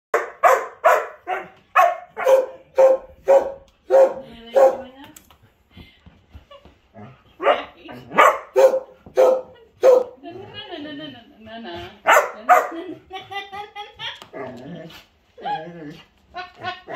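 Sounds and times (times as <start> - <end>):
dog barking: 0.1 - 4.9, 7.4 - 10.2, 12.1 - 12.8.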